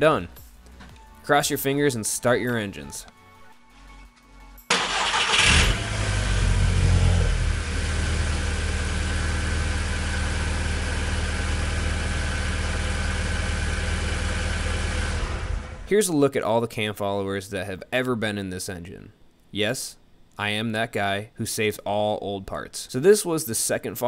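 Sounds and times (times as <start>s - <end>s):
car engine starting and idling: 4.7s - 15.9s.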